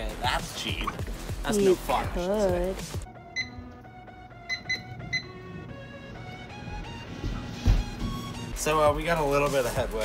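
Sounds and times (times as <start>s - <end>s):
soft background music: 0.0s - 10.0s
microwave keypad beeps: 3.3s - 3.8s, 4.4s - 5.5s.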